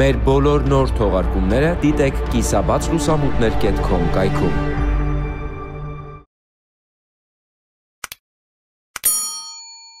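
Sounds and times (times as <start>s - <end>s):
bright bell ding: 9.0s - 10.0s.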